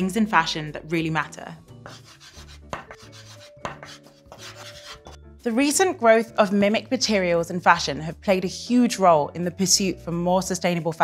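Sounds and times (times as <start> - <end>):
chalk scratching on chalkboard: 1.8 - 5.2
chalk tapping on board: 1.8 - 5.2.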